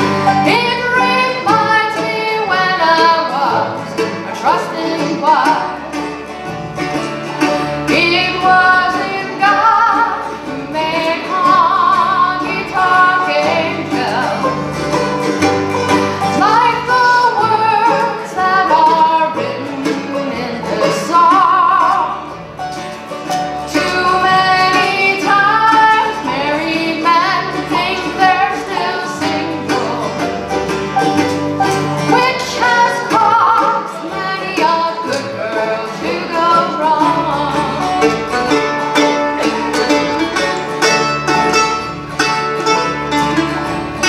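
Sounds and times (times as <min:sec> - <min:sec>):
bluegrass band playing: 0:00.0 - 0:44.0
person singing melody: 0:07.4 - 0:22.4, 0:23.6 - 0:41.0.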